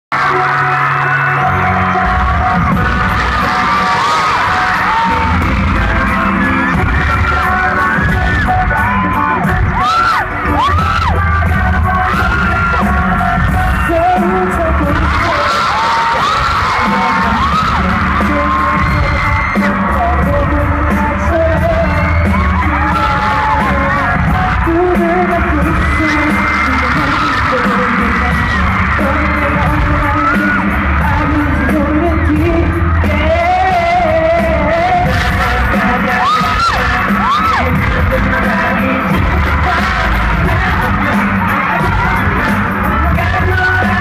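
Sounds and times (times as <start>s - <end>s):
fans screaming and whooping: 0.1s - 44.0s
pop song with heavy bass beat: 0.1s - 44.0s.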